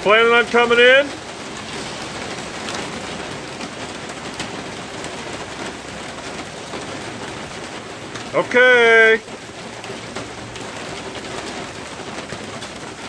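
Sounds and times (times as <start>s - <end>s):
heavy rain on grass: 0.0s - 13.0s.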